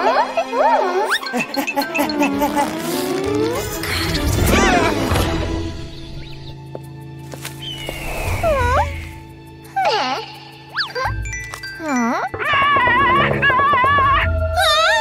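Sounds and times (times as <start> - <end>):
cartoon soundtrack music: 0.0 - 15.0.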